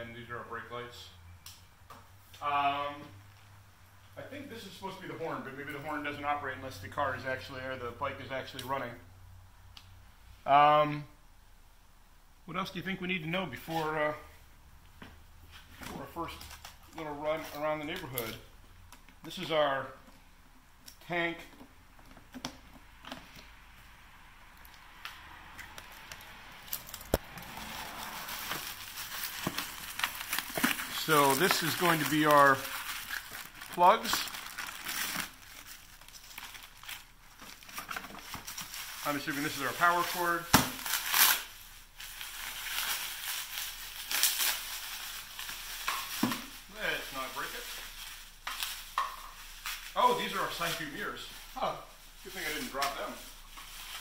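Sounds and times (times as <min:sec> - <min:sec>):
bubble wrap crinkling: 0:20.9 - 0:54.0.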